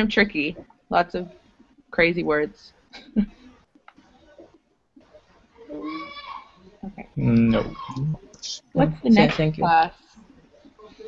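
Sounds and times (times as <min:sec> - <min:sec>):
person saying okay: 0:06.9 - 0:08.2
wavering vocal sound: 0:07.1 - 0:08.2.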